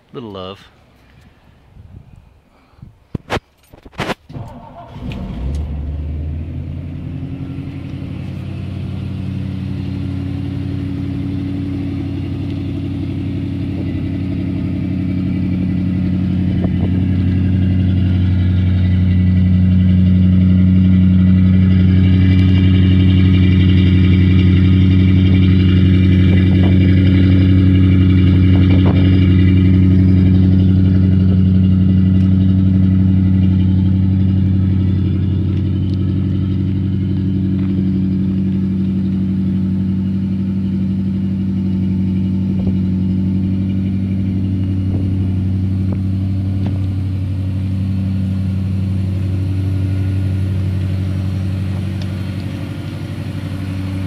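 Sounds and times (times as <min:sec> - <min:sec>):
car engine idling: 0:04.3 - 0:54.0.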